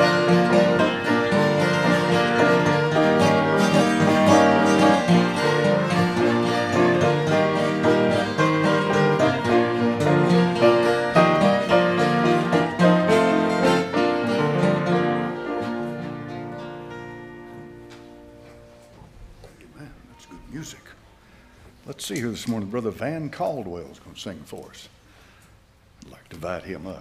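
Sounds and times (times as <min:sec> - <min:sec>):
fiddle: 0:00.0 - 0:17.2
piano: 0:00.0 - 0:20.7
acoustic guitar: 0:00.0 - 0:22.6.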